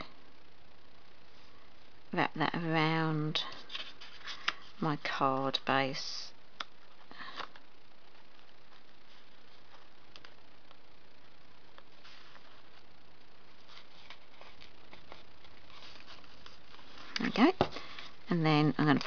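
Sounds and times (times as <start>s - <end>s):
steady room hiss: 0.0s - 19.0s
cardstock and ribbon rustling: 3.5s - 5.2s, 13.5s - 19.0s.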